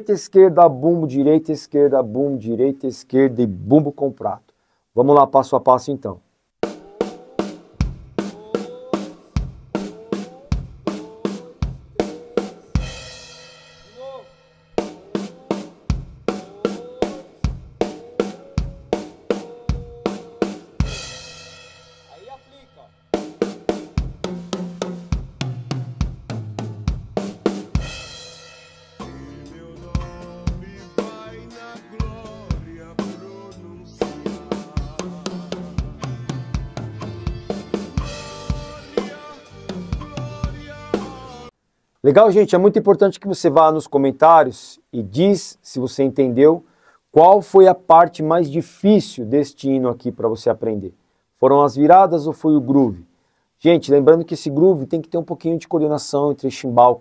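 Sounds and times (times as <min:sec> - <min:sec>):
bass drum kicks: 0:07.8 - 0:08.2, 0:09.4 - 0:09.8, 0:10.6 - 0:10.9, 0:11.6 - 0:12.0, 0:15.9 - 0:16.3, 0:17.5 - 0:17.8, 0:25.2 - 0:28.1.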